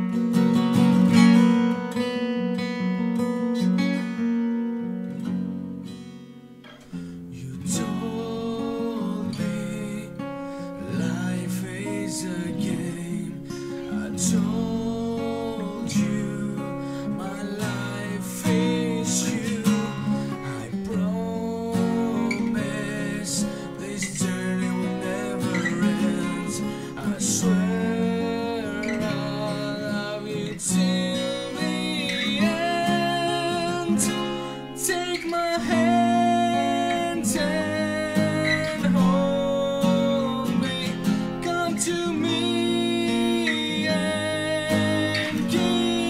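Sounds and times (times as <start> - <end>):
acoustic guitar strumming: 0.0 - 46.0.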